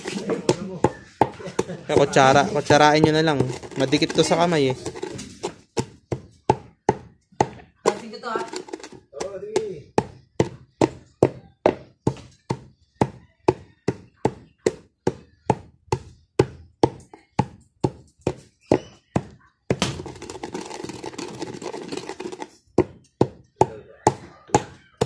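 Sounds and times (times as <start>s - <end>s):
pestle pounding in a mortar: 0.0s - 25.0s.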